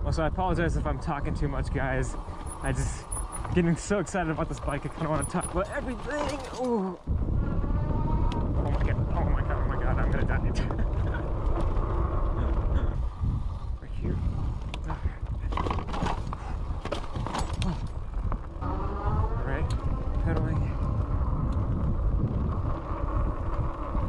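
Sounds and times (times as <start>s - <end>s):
bike clicks and rattles: 0.7s - 7.1s, 7.8s - 13.7s, 14.3s - 24.0s
tyres on dirt: 0.7s - 7.1s, 14.7s - 24.0s
wind on microphone: 7.0s - 24.0s.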